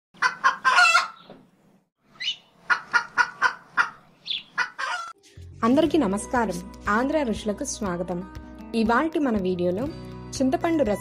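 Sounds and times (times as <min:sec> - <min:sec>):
bird calls: 0:02.1 - 0:05.1.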